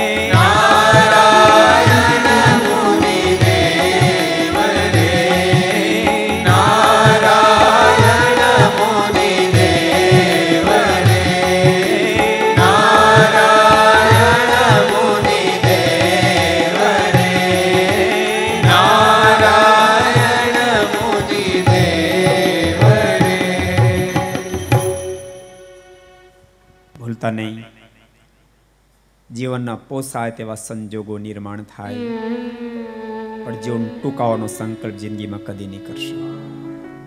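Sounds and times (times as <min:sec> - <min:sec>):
devotional singing: 0:00.0 - 0:26.4, 0:31.8 - 0:37.0
tabla: 0:00.0 - 0:26.4.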